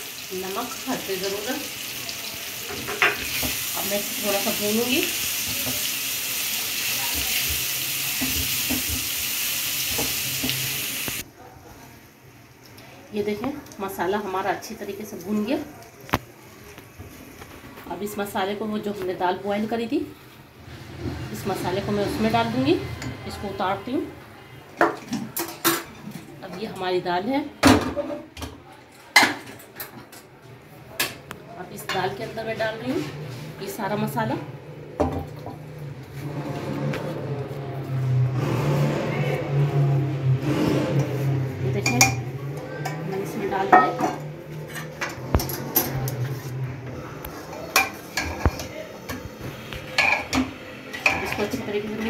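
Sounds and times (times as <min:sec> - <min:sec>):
metal cookware clanking: 0:02.7 - 0:03.6, 0:41.8 - 0:46.3, 0:49.9 - 0:52.0.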